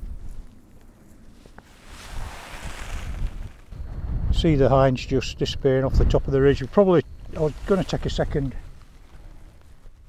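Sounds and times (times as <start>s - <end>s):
wind buffeting microphone: 0.0s - 0.6s, 1.8s - 10.0s
loud rush of wind: 1.8s - 6.4s.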